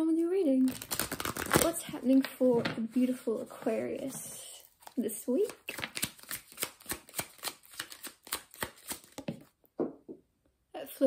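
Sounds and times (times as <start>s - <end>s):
cards being shuffled by hand: 0.7s - 4.2s, 4.9s - 9.5s.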